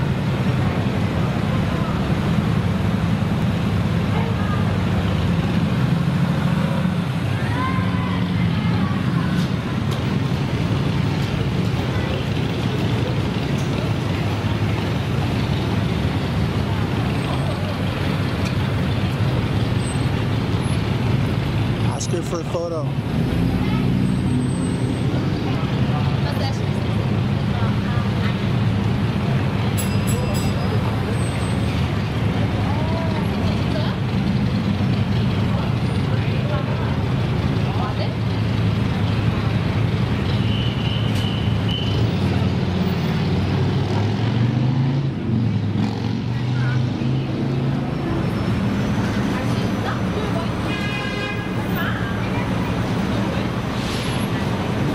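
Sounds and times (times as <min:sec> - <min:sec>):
street traffic rumble: 0:00.0 - 0:54.9
vehicles idling: 0:00.0 - 0:54.9
indistinct voices: 0:46.2 - 0:54.9.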